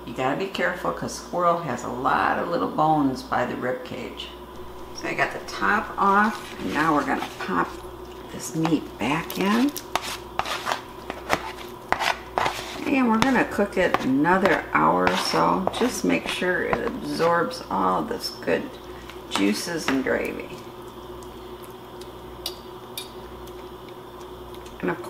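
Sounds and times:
faint steady hum: 0:00.0 - 0:25.0.

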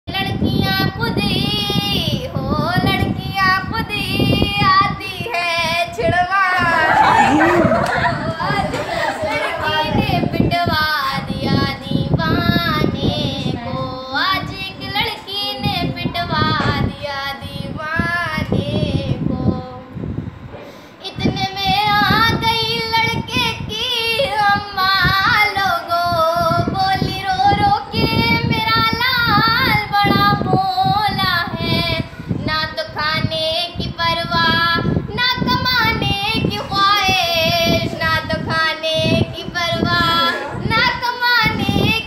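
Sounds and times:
girl singing unaccompanied: 0:00.1 - 0:20.2, 0:21.0 - 0:42.0.

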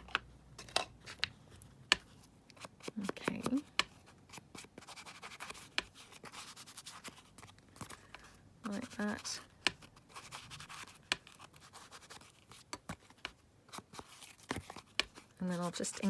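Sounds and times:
ink pad rubbing on paper: 0:15.4 - 0:16.0.

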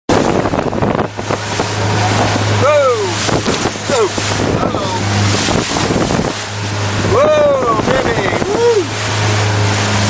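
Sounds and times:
motorboat engine hum: 0:00.1 - 0:10.0
wind buffeting microphone: 0:00.1 - 0:10.0.

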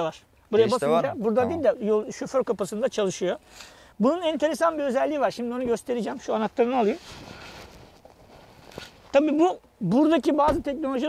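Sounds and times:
faint rustling and shuffling: 0:04.7 - 0:09.8.

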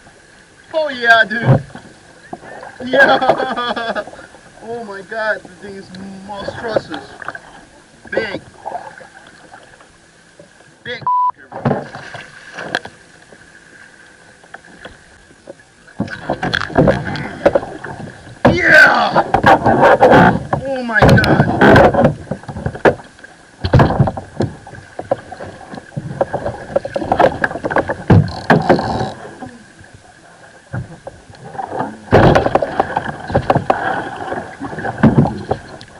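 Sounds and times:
censor bleep: 0:11.0 - 0:11.4
gear knocking against kayak: 0:15.5 - 0:29.3
person shouting excitedly: 0:18.5 - 0:19.2.

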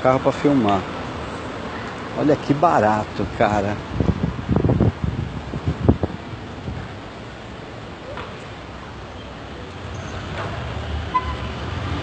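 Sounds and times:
street background hiss: 0:00.0 - 0:12.0.

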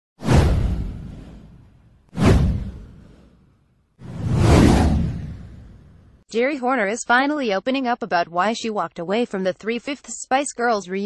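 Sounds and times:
whoosh with deep rumble: 0:00.2 - 0:06.2.

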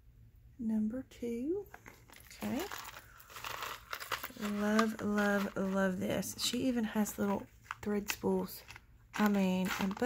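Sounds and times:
stiff paper card rustling: 0:01.7 - 0:10.0.

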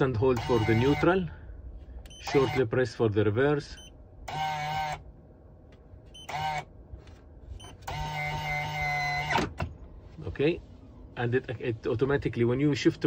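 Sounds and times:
electric motor whine: 0:07.8 - 0:09.5.

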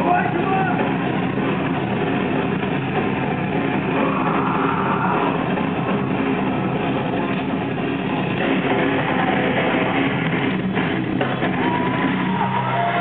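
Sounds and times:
drum kit: 0:00.0 - 0:13.0
electric guitar: 0:00.0 - 0:13.0.

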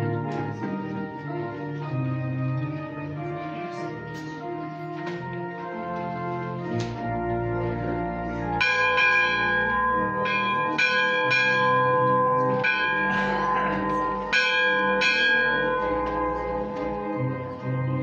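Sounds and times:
church organ chords: 0:00.0 - 0:18.0
bright bell-like notes: 0:08.6 - 0:17.6.

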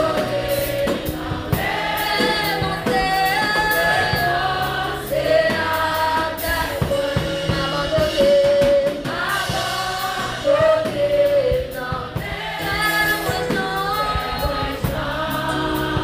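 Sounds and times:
girls' choir singing: 0:00.0 - 0:08.1, 0:08.9 - 0:16.0
instrumental accompaniment with beat: 0:00.0 - 0:16.0.

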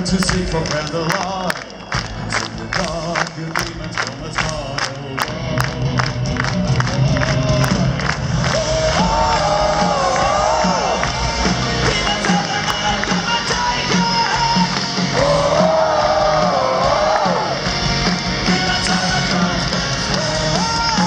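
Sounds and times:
crowd clapping in time: 0:00.0 - 0:21.0
heavy metal band music: 0:00.0 - 0:21.0.

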